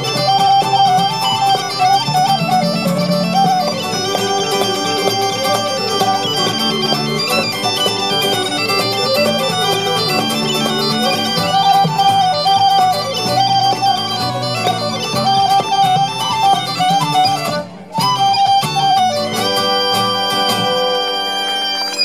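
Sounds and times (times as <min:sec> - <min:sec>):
low whistle melody: 0:00.0 - 0:22.0
strummed acoustic guitar chords: 0:00.0 - 0:22.0.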